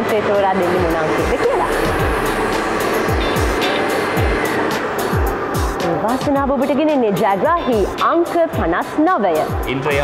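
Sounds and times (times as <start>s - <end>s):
lottery machine air rush: 0.5s - 6.2s
music with kick-drum beat: 1.2s - 6.6s, 9.4s - 10.0s.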